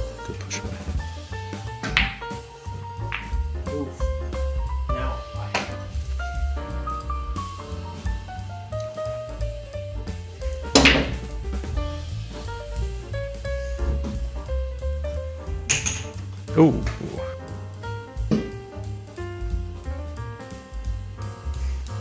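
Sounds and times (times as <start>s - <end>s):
pool balls clacking: 0.0s - 17.5s, 18.2s - 19.8s
background music with bass line: 0.0s - 22.0s.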